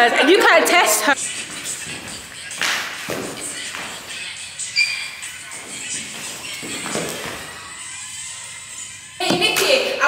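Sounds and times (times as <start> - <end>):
feet thudding and shuffling on floor: 1.4 - 4.2, 5.5 - 7.7
high squeak: 4.6 - 5.4.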